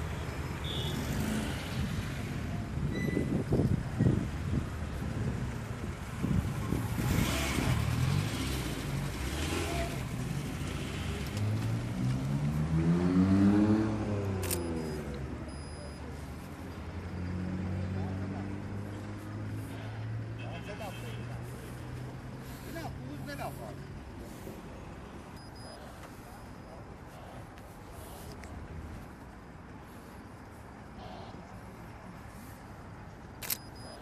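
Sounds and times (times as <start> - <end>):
road traffic passing: 0.0 - 34.0
car engine revving: 7.0 - 15.0.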